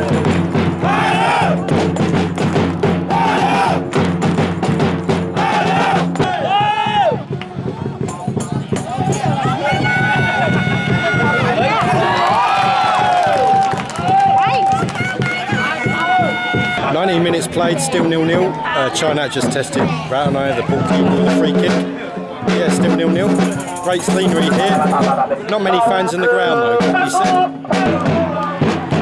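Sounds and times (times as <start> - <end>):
crowd chanting: 0.0 - 1.8, 3.0 - 3.9, 5.3 - 6.7, 24.4 - 29.0
fans drumming: 0.0 - 29.0.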